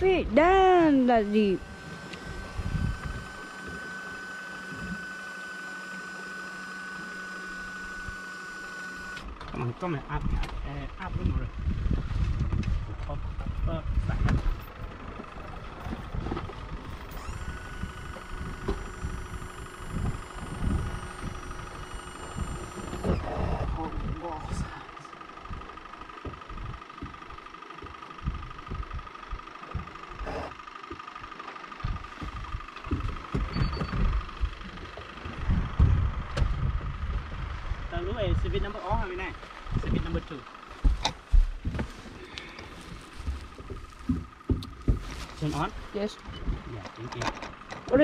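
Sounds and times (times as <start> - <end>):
people talking: 0.0 - 1.6, 9.6 - 11.6, 23.2 - 25.0, 37.9 - 40.4, 45.4 - 48.0
higher whine: 0.0 - 48.0
steady high-pitched whine: 0.0 - 48.0
wind gusts on microphone: 35.3 - 38.7.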